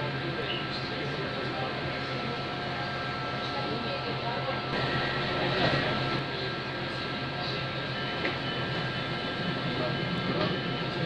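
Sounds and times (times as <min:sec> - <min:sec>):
steady whining tones: 0:00.0 - 0:11.0
freight train rumbling: 0:01.0 - 0:11.0.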